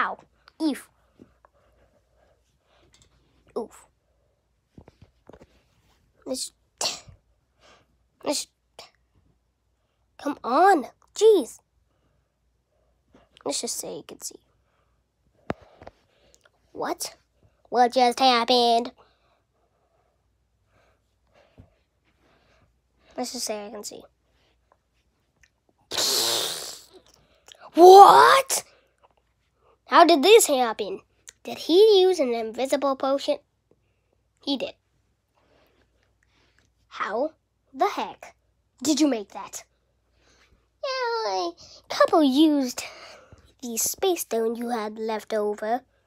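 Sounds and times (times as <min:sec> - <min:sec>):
person making breathy vocal bursts: 0:25.9 - 0:27.1
harsh mouth hissing: 0:25.9 - 0:27.2.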